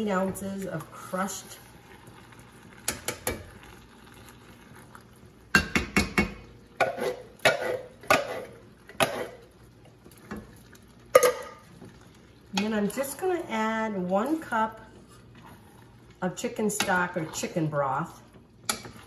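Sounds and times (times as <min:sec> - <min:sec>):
tin can knocking on pot: 0:05.5 - 0:06.4.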